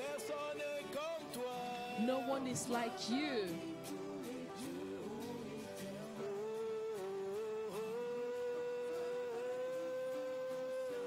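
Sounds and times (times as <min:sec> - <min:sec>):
live worship music: 0:00.0 - 0:11.0.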